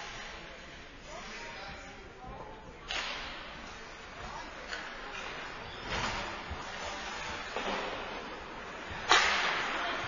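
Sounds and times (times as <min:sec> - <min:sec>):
hockey stick crack in rink: 0:09.0 - 0:09.9.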